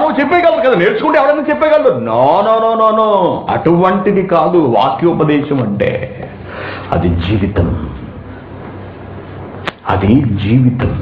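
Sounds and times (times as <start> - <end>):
man lecturing: 0.0 - 8.2, 9.8 - 11.0
steady background hiss: 0.0 - 11.0.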